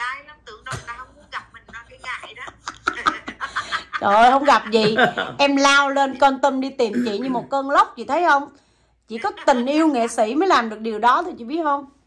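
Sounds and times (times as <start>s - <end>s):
person speaking: 0.6s - 7.9s
person snickering and chuckling: 2.5s - 5.4s.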